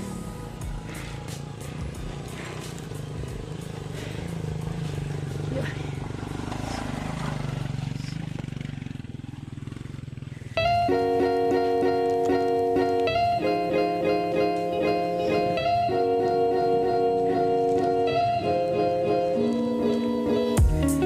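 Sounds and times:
motorcycle rattles: 0.0s - 13.4s
dirt bike engine running: 0.0s - 21.0s.

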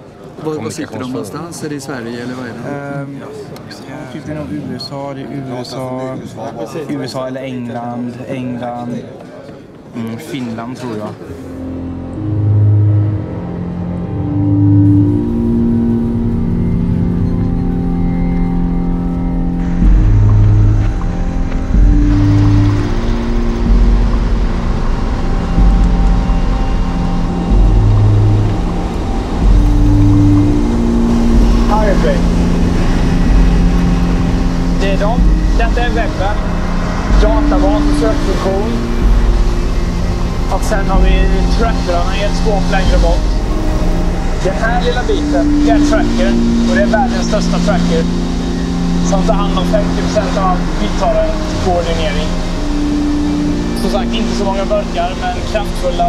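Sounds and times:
synthesizer held low notes: 11.3s - 56.0s
pulsing low beat: 11.5s - 56.0s.

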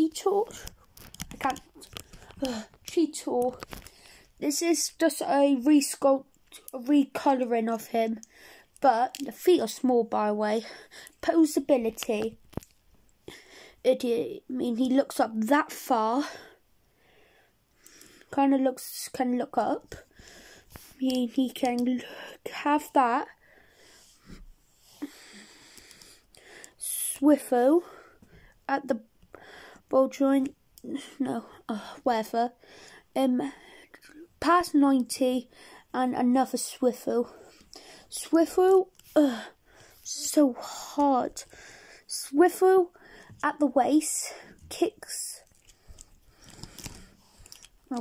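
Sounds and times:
faint breathing: 8.2s - 8.8s, 10.6s - 11.2s, 13.2s - 13.8s, 16.2s - 18.3s, 19.9s - 21.0s, 23.3s - 26.9s, 29.3s - 29.9s, 32.6s - 34.1s, 35.5s - 35.9s, 37.2s - 38.2s, 39.2s - 42.2s, 42.9s - 43.4s, 45.6s - 47.8s
plastic toy clicking: 21.1s - 21.9s.

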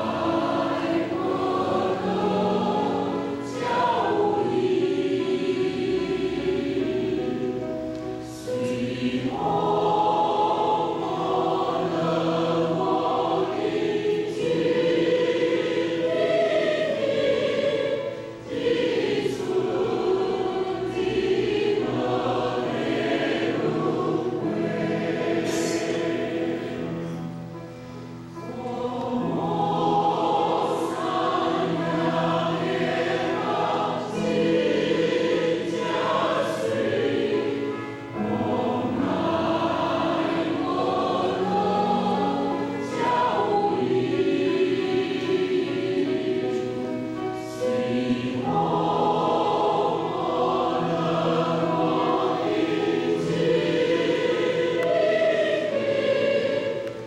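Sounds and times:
mixed choir singing: 0.0s - 27.6s, 28.3s - 57.0s.

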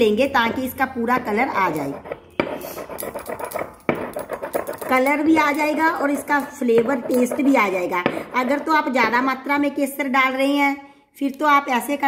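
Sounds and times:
stone pestle grinding in mortar: 0.1s - 9.2s
stone-on-stone knock: 0.4s - 8.8s.

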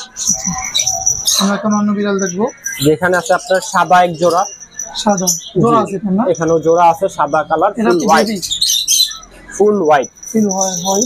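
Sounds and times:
small birds chirping: 0.0s - 11.0s
person speaking: 1.4s - 8.5s.

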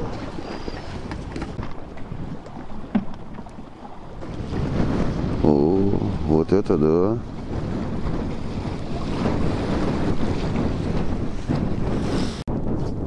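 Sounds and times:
sea waves washing in: 0.0s - 12.4s
wind buffeting the microphone: 0.0s - 13.0s.

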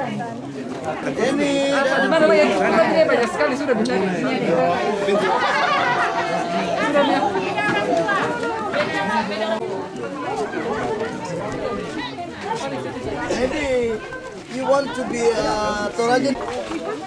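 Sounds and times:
overlapping chatter of people: 0.0s - 17.0s.

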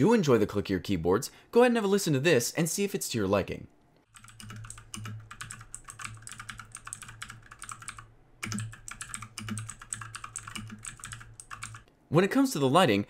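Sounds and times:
clicky mechanical keyboard typing: 4.0s - 11.9s.

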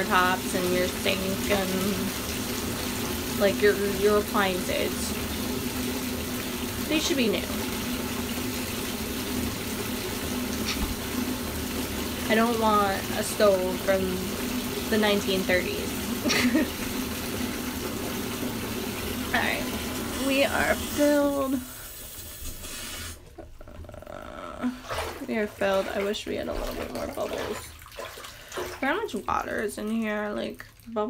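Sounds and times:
faucet running into tub: 0.0s - 31.0s
water pouring into bathtub: 0.0s - 31.0s.

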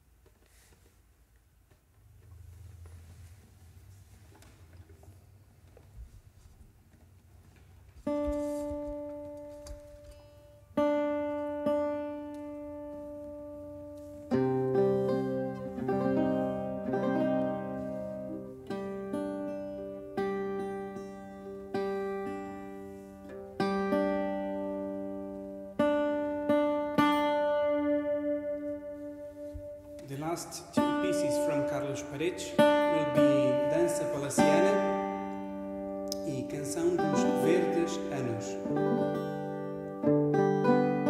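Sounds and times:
plucked guitar duet: 8.0s - 41.0s.

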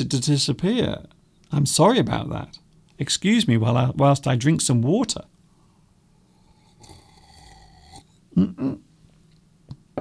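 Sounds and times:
person sipping and swallowing water: 6.2s - 8.2s.

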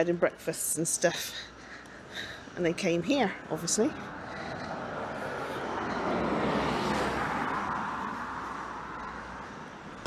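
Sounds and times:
car driving past: 4.5s - 9.1s.

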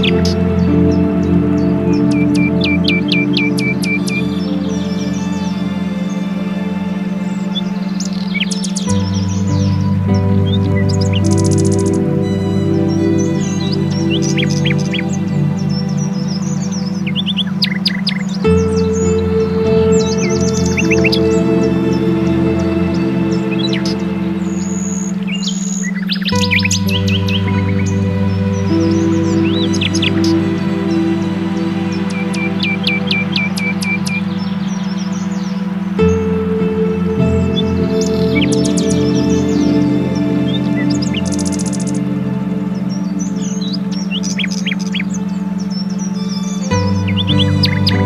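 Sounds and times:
birdsong chirps and trills: 0.0s - 48.0s
steady low tone: 0.0s - 48.0s
sustained synth chords: 0.0s - 48.0s.

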